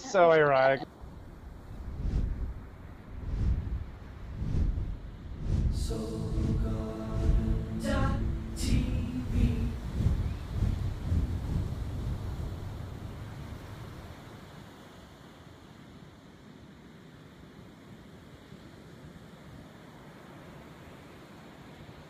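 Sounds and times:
ocean surf: 0:00.0 - 0:22.0
wind on microphone: 0:00.9 - 0:14.8.

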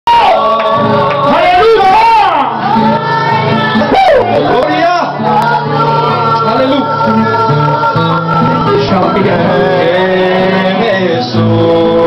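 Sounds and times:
person singing worship song: 0:00.1 - 0:12.0.

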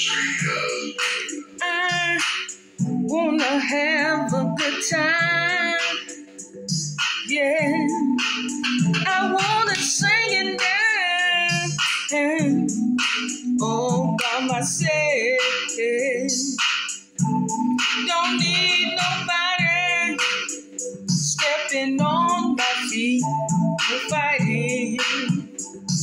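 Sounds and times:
woman singing with vibrato: 0:00.0 - 0:06.1, 0:07.3 - 0:08.2, 0:09.0 - 0:12.7, 0:13.6 - 0:16.6, 0:18.0 - 0:20.2, 0:21.3 - 0:25.5
instrumental accompaniment: 0:00.0 - 0:14.5, 0:16.6 - 0:26.0.

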